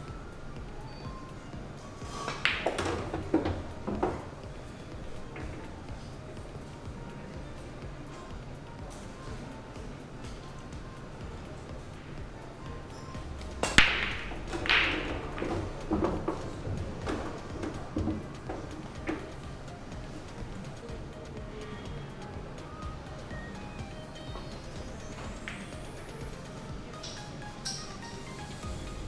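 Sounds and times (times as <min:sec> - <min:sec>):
pool balls clacking and knocking: 0:00.0 - 0:28.6
cue ball cracking into pool balls: 0:02.1 - 0:04.4, 0:13.6 - 0:19.2.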